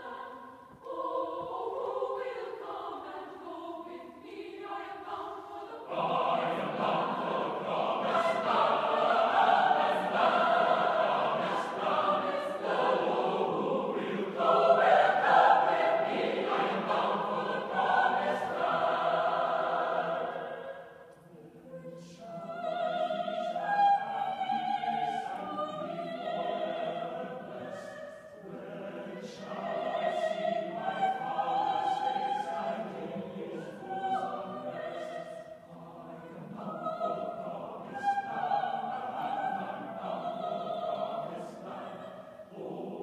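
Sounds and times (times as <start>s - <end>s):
mixed choir singing unaccompanied: 0.0s - 43.0s.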